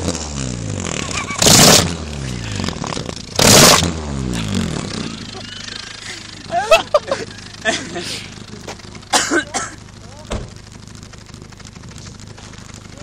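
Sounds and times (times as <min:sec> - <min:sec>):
car engine revving: 0:00.0 - 0:13.0
exhaust flapping farting blasts: 0:00.8 - 0:06.1.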